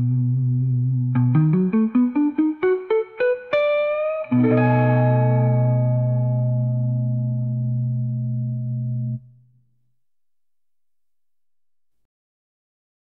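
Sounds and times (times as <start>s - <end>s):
blues electric guitar: 0.0s - 9.2s.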